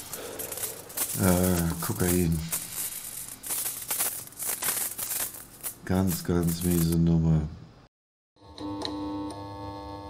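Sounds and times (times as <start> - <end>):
rustling and rattling: 0.0 - 7.0.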